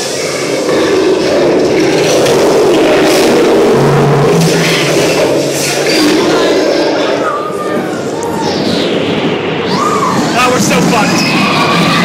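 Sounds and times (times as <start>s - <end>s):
amusement ride rushing noise: 0.0s - 12.0s
low hum: 0.0s - 12.0s.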